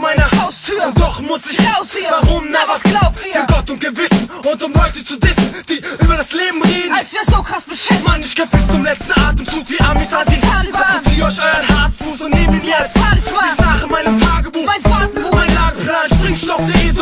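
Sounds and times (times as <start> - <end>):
rapping over a beat: 0.0 - 17.0.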